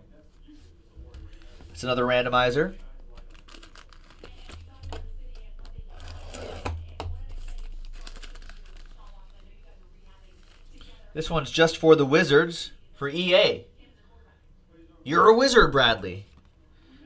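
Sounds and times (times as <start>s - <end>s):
foil wrapper crinkling: 2.9s - 9.6s.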